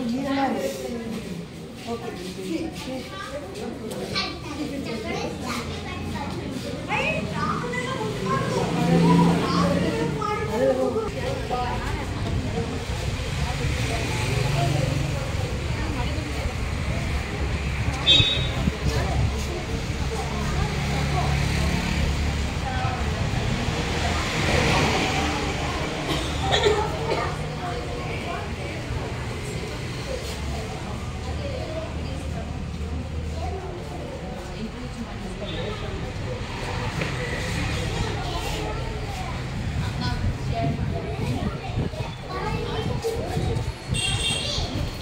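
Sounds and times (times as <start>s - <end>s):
indistinct background voices: 0.0s - 45.0s
small children chattering: 0.0s - 45.0s.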